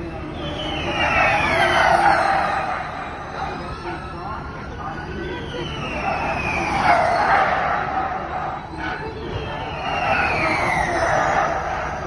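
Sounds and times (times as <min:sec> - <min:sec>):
electric race car whine passing: 0:00.0 - 0:12.0.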